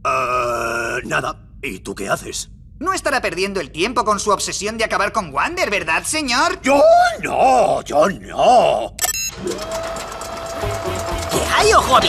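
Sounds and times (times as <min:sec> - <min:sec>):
low rumble: 0:00.4 - 0:06.6.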